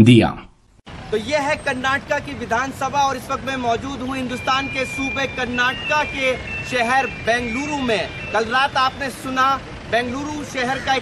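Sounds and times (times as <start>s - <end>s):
man talking: 0.0s - 0.5s, 1.1s - 11.0s
road traffic noise: 0.8s - 11.0s
high steady beep-like tone: 4.0s - 9.5s.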